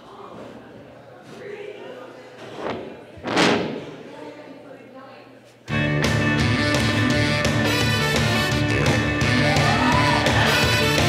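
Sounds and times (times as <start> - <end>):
faint audience chatter: 0.0 - 11.0
loud slam ringing in a hall: 2.7 - 4.2.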